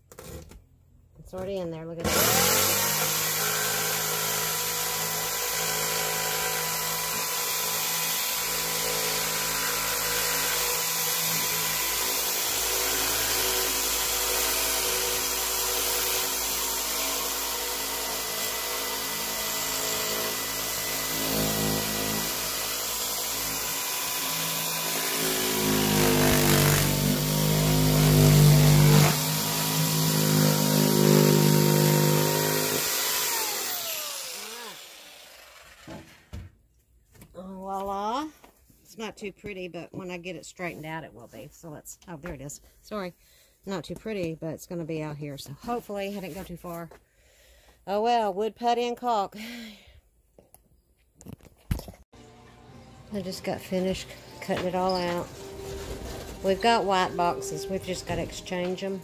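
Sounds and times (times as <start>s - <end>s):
jigsaw cutting wood panel: 2.0s - 36.4s, 53.2s - 59.0s.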